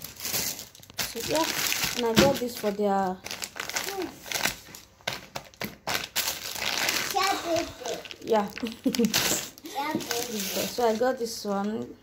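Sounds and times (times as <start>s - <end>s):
plastic bags crinkling: 0.0s - 11.9s.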